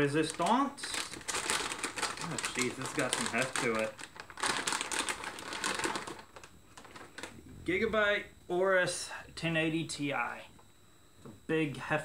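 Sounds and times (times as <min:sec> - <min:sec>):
anti-static bag crinkling: 0:00.0 - 0:07.4.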